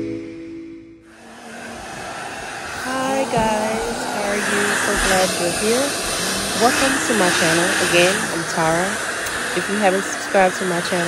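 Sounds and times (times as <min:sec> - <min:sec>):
hair dryer blowing: 0:01.1 - 0:11.0
woman talking: 0:02.8 - 0:11.0.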